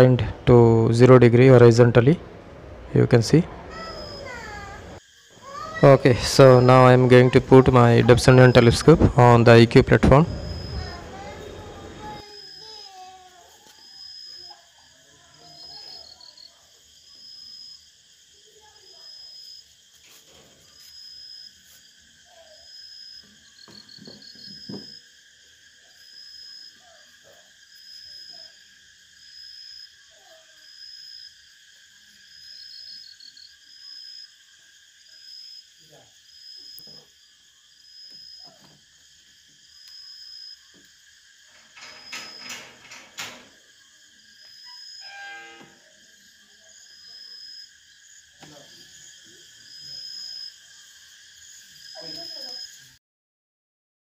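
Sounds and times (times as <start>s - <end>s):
crickets chirping: 0.0s - 53.0s
insect drone: 0.0s - 53.0s.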